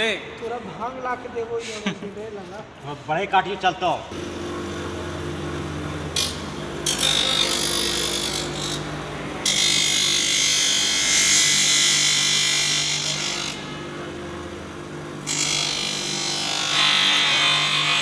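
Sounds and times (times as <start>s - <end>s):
bench grinder motor hum: 4.2s - 18.0s
grinding hiss: 4.2s - 18.0s.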